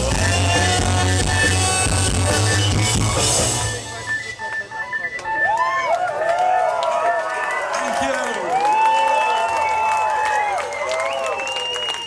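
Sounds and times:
rock band playing: 0.0 - 5.4
scattered clapping: 5.2 - 12.0
crowd cheering and whooping: 5.3 - 12.0.

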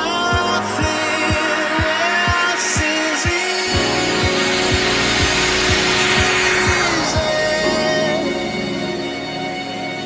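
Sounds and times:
held synth note: 0.0 - 10.0
white-noise sweep: 0.0 - 10.0
kick drum: 0.3 - 7.4.

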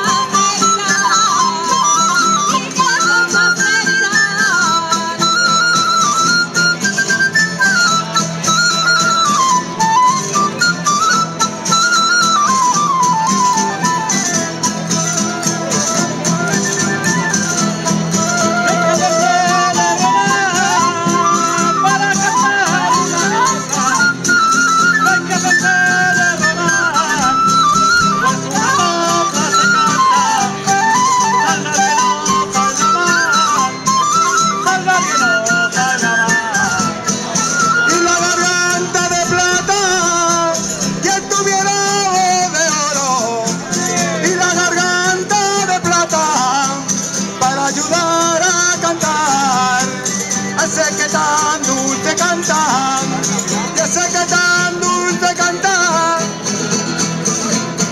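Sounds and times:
strummed guitars and lutes: 0.0 - 57.9.

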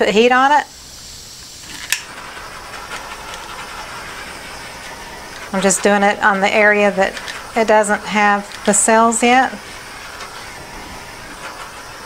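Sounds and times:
heat tool hissing: 0.0 - 12.0.

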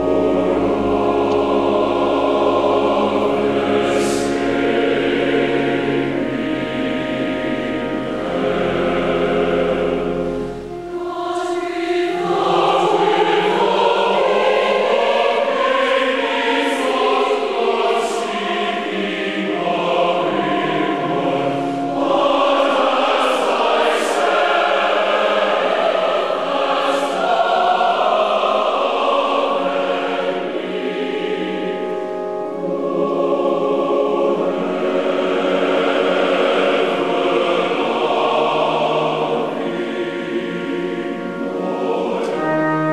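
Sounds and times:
large choir singing: 0.0 - 42.9.

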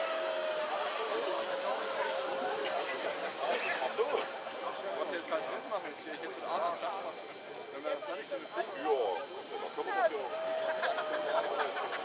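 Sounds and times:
electric ducted fan whining: 0.0 - 12.0
voices chattering: 0.0 - 12.0.

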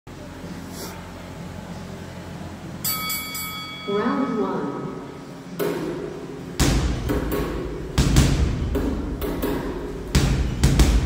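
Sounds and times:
boxing bell ringing: 2.8 - 4.8.

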